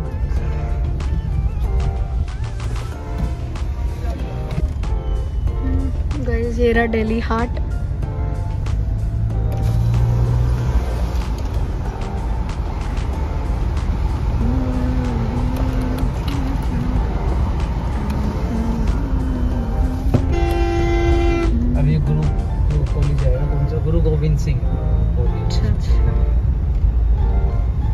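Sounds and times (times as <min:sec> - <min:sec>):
background music: 0:00.0 - 0:27.9
road and engine rumble: 0:00.0 - 0:27.9
vehicle horn: 0:20.1 - 0:21.8.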